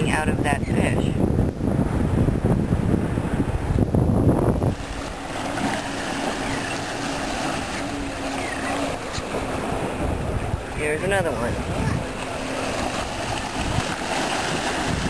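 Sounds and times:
boat motor humming: 0.0 - 15.0
wind buffeting microphone: 0.0 - 15.0.

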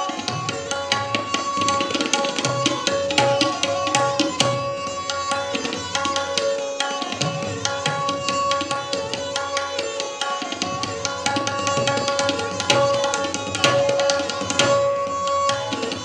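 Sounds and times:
tabla drumming: 0.0 - 16.0
bowed string melody: 0.4 - 16.0.

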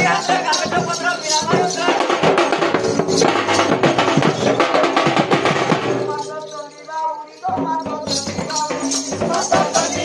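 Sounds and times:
barrel drums beaten fast: 0.0 - 6.4, 7.5 - 10.0.

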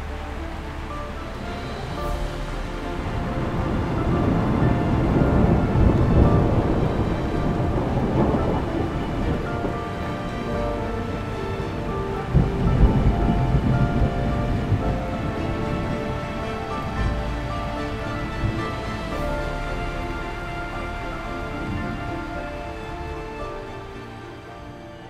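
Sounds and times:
rain hissing: 0.0 - 25.0
slow music of held notes: 0.0 - 25.0
thunder rumbling: 0.0 - 25.0.

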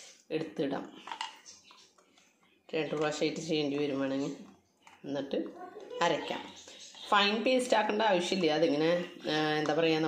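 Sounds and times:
woman speaking: 0.3 - 1.1, 2.7 - 10.0.

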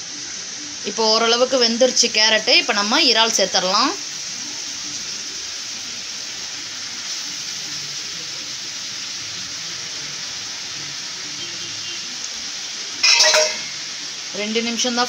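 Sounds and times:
vegetables sizzling in oil: 0.0 - 15.0.

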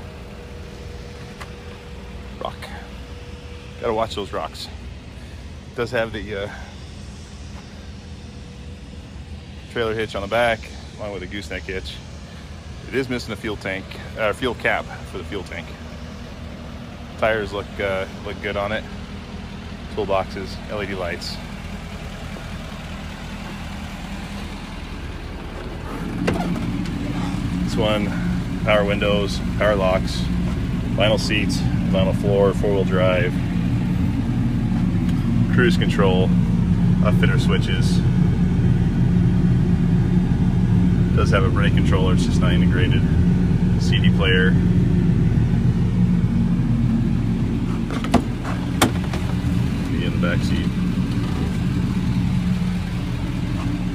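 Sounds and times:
diesel engine idling: 0.0 - 53.9
truck door clicks: 47.9 - 49.4.

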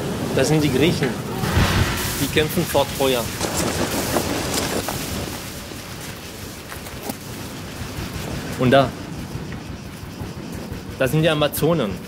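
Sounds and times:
rushing noise with low rumble: 0.0 - 11.3.

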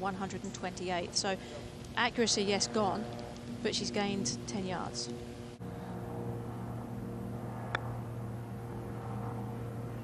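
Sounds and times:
steady low hum: 0.0 - 10.0
golf club striking ball: 7.7 - 7.9.

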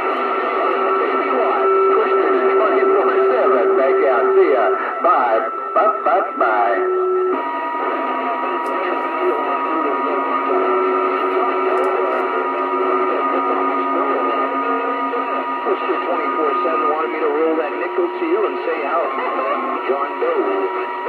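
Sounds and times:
garbled radio voices: 0.0 - 21.0
radio static: 0.0 - 21.0.

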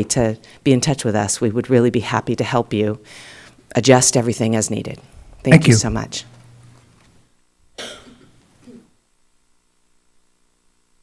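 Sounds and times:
person coughing: 7.8 - 8.9.

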